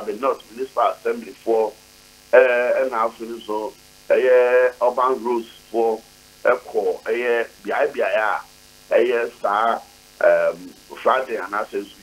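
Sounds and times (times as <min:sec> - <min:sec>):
low telephone line hum: 0:00.0 - 0:12.0
man's voice over telephone: 0:00.0 - 0:12.0.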